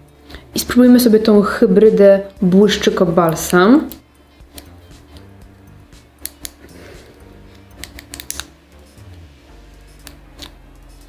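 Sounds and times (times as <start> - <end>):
soft background music: 0.0 - 11.0
lip balm tube clicks: 6.2 - 6.6, 7.8 - 8.5.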